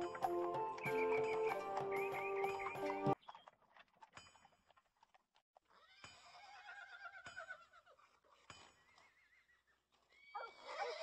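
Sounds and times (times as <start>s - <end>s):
horse whinnying: 10.2s - 11.0s.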